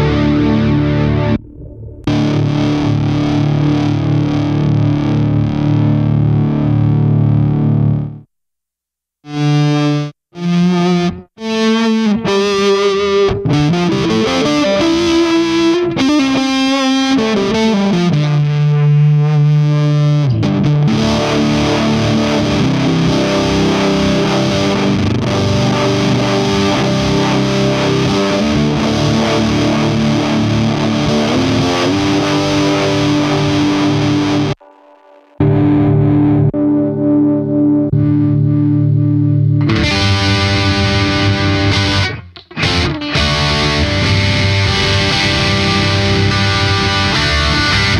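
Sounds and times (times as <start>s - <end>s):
distorted electric guitar: 0.0s - 8.3s, 9.2s - 47.9s.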